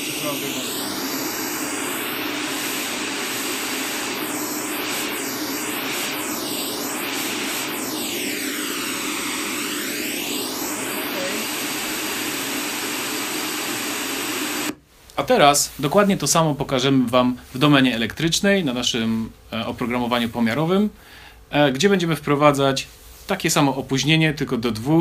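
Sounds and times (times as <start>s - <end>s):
swishing pink noise from speakers: 0.0s - 14.8s.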